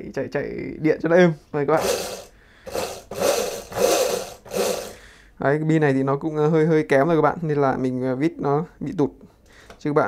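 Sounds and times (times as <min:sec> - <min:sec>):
electric motor whirring: 0:01.8 - 0:05.0.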